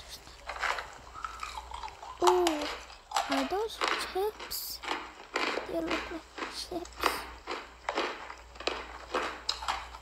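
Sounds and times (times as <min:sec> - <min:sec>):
crunchy snacks being chewed: 0:00.1 - 0:10.0.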